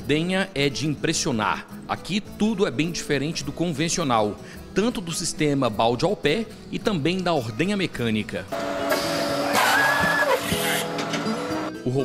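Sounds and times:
background music: 0.0s - 12.0s
milking machine hiss and whine: 8.6s - 11.7s.

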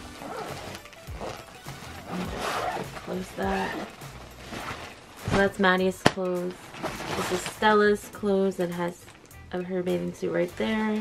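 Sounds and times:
plastic bag crinkling: 0.0s - 6.0s, 6.6s - 7.8s
quiet background music: 0.0s - 11.0s.

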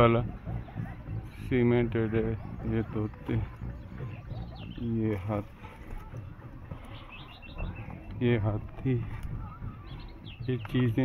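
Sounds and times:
low outdoor background noise: 0.0s - 11.0s
man's voice: 10.4s - 11.0s.

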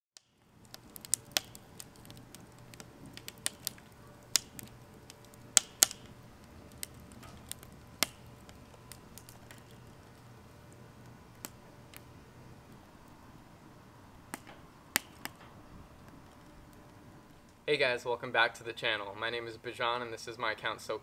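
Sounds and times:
firewood crackling and popping: 0.2s - 19.9s.

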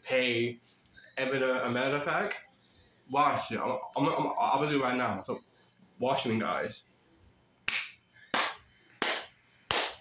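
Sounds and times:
hand claps: 7.6s - 10.0s.

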